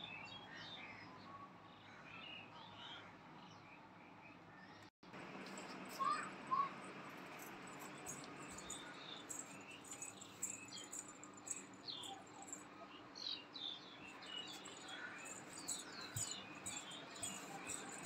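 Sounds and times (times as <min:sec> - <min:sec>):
small birds chirping: 0:07.4 - 0:18.0.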